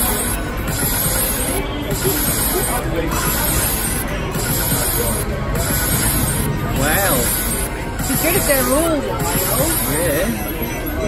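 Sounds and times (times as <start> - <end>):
background music: 0.0 - 11.0
slot machine music and effects: 0.0 - 11.0
voices: 0.0 - 11.0.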